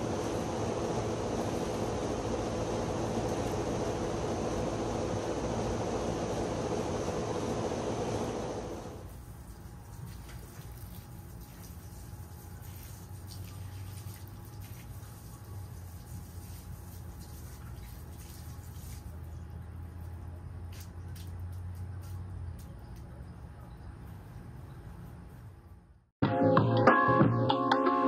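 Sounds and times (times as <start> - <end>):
low steady hum: 0.0 - 26.1
water pouring onto soil: 9.1 - 19.4.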